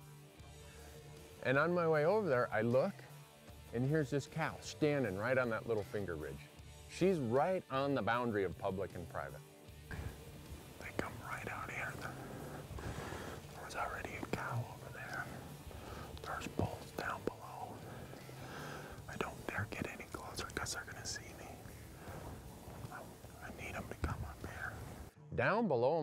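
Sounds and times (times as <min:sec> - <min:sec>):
man whispering: 0:09.9 - 0:25.1.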